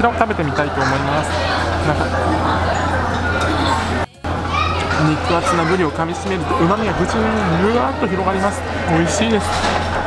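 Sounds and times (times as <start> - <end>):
diners chattering: 0.0 - 10.0
children's voices: 0.3 - 10.0.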